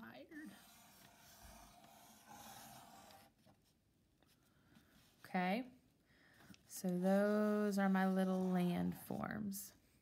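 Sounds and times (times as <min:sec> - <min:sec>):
marker scratching on paper: 0:00.2 - 0:03.8, 0:07.1 - 0:09.3.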